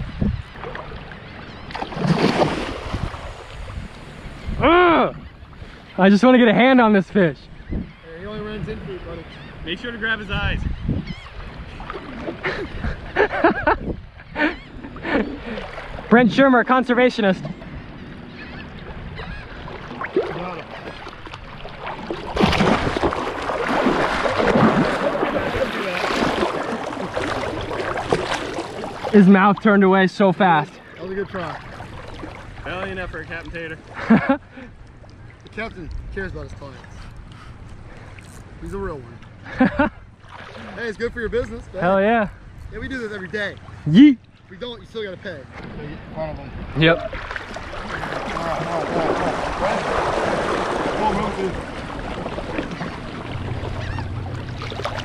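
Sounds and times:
wind on microphone: 0:00.0 - 0:05.8, 0:07.4 - 0:16.1, 0:17.4 - 0:20.5
seawater sloshing and splashing: 0:00.3 - 0:04.6, 0:11.0 - 0:13.7, 0:14.5 - 0:39.4, 0:40.1 - 0:41.5, 0:43.1 - 0:55.0
water gurgling: 0:19.6 - 0:33.9, 0:46.8 - 0:55.0.

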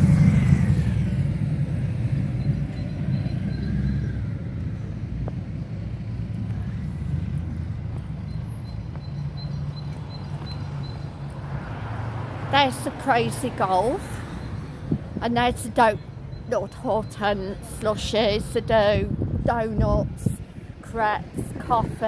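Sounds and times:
motorcycle passing: 0:00.0 - 0:08.6
road traffic rumble: 0:00.0 - 0:22.0.

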